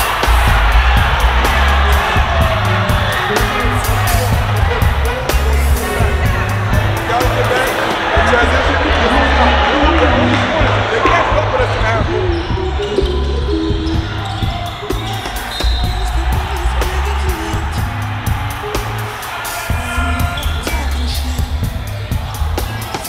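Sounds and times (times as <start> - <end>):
music with heavy bass beat: 0.0 - 23.0
voices: 0.0 - 23.0.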